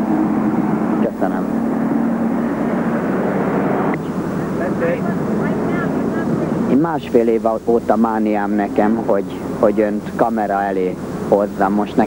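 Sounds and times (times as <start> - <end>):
engine drone: 0.0 - 12.0
outdoor noise: 0.0 - 12.0.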